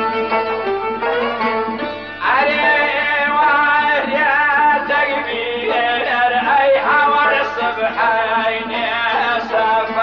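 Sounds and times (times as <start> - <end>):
man singing: 2.2 - 10.0.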